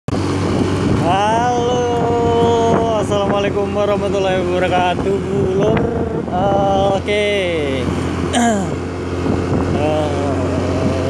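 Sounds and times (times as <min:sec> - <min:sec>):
motorcycle engine running: 0:00.1 - 0:11.0
wind noise: 0:00.1 - 0:11.0
person calling out: 0:08.4 - 0:08.8, 0:09.8 - 0:10.7.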